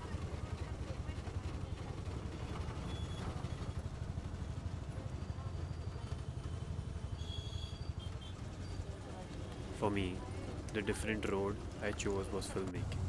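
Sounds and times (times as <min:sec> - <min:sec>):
auto-rickshaw engine rumbling: 0:00.0 - 0:13.0
road noise: 0:00.0 - 0:13.0.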